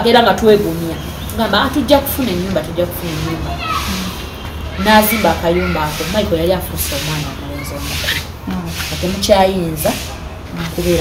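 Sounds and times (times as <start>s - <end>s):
rubbing rustling noise: 2.0s - 11.0s
person speaking: 4.8s - 11.0s.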